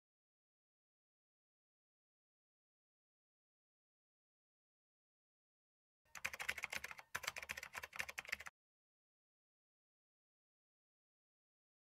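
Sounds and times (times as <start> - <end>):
keyboard typing clicks: 6.1 - 8.5.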